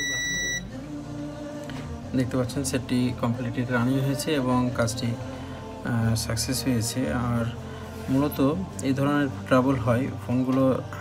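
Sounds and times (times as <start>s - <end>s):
high-pitched electronic beep: 0.0s - 0.7s
background music with low notes: 0.0s - 11.0s.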